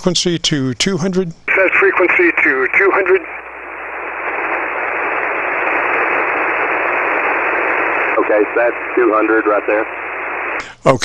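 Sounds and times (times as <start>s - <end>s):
shortwave radio band noise hiss: 0.0s - 11.0s.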